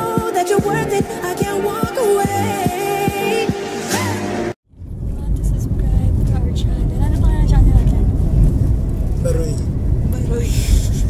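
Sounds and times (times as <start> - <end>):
music: 0.0 - 4.6
car cabin rumble: 4.7 - 11.0.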